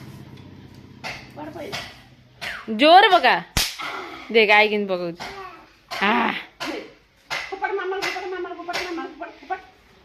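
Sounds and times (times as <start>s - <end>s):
woman speaking: 2.7s - 3.5s, 4.3s - 5.2s.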